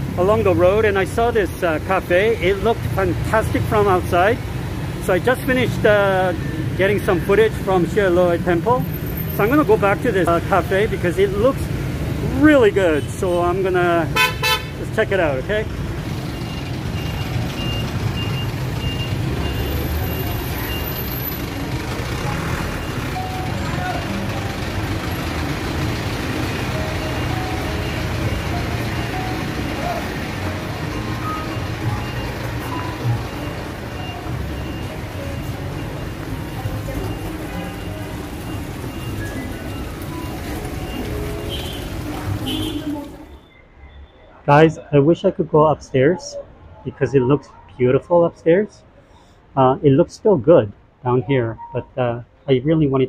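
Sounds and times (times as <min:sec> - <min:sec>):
truck reversing beeper: 0:16.0 - 0:44.4
music: 0:27.0 - 0:43.2.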